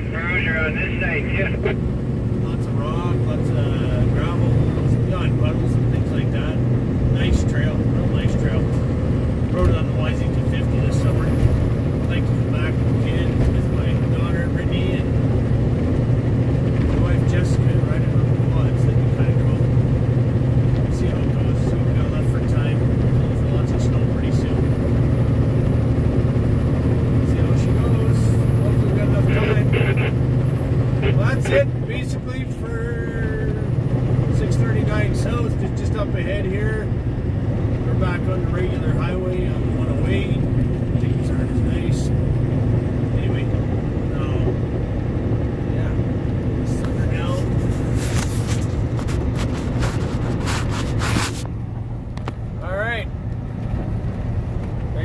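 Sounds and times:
truck engine and tyre drone: 0:00.0 - 0:55.0.

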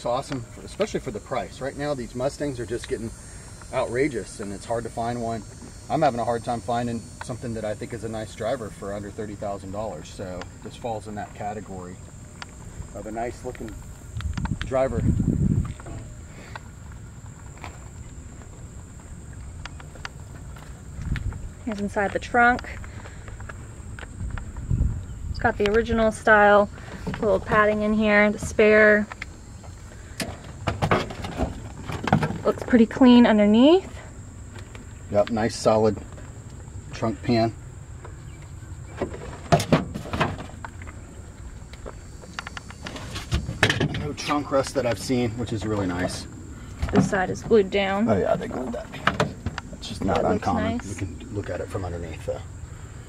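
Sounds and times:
high-pitched insect buzz: 0:00.1 - 0:39.1
sharp knocks and rustles: 0:29.6 - 0:32.8, 0:38.4 - 0:41.0, 0:41.8 - 0:46.2.

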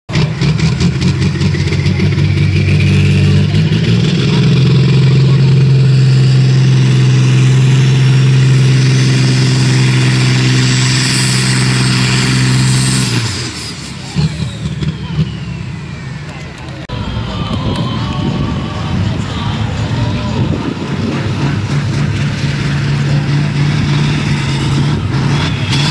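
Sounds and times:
truck diesel engine at full throttle: 0:00.1 - 0:25.9.

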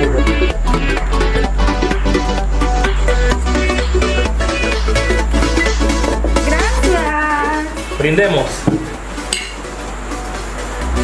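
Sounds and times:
background music: 0:00.0 - 0:11.0
drinking glasses clinking: 0:08.7 - 0:09.6.

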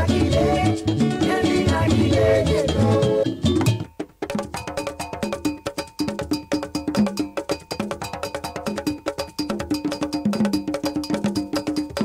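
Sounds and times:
hand drums: 0:00.0 - 0:12.0.

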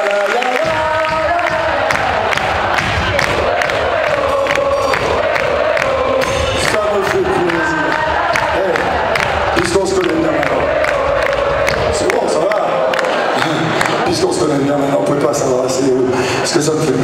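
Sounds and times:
concert crowd cheering: 0:00.0 - 0:17.0.

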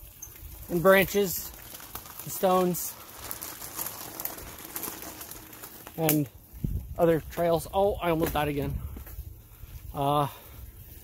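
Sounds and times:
bicycle tyres crunching on gravel: 0:00.0 - 0:11.0.

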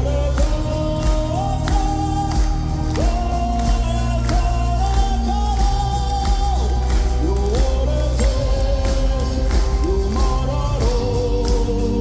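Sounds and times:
metal band drums and keyboards: 0:00.0 - 0:12.0
singer holding long notes: 0:00.0 - 0:12.0.

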